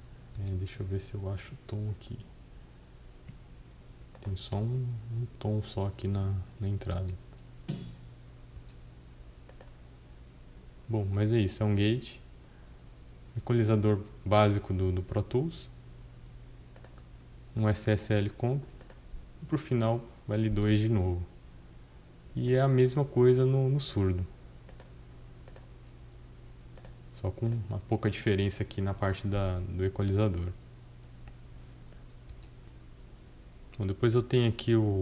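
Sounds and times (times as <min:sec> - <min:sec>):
low steady hum: 0:00.0 - 0:35.0
computer mouse clicks: 0:04.1 - 0:04.4, 0:09.4 - 0:09.8, 0:16.7 - 0:17.1, 0:18.8 - 0:19.0, 0:24.7 - 0:25.8, 0:26.8 - 0:27.6, 0:31.0 - 0:32.6.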